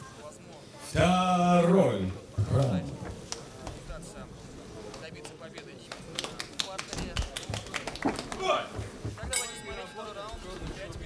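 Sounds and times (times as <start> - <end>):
sharp taps or claps: 4.9 - 9.4.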